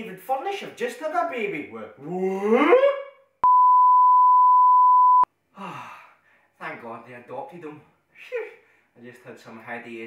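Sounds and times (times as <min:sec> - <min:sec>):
electronic test tone beep: 0:03.4 - 0:05.3.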